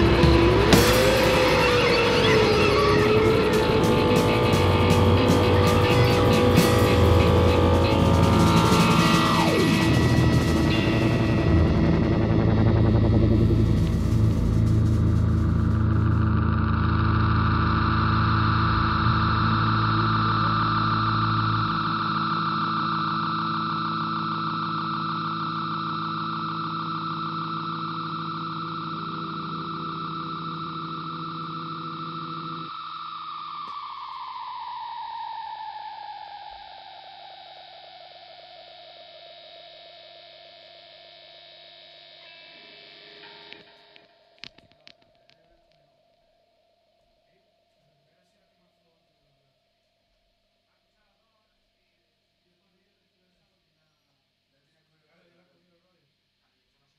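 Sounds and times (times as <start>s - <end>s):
drums: 0.0s - 16.9s
rock band final chord: 0.0s - 32.7s
held tone sliding down in pitch: 0.0s - 37.4s
keyboard: 0.0s - 39.5s
distorted guitars: 0.0s - 46.3s.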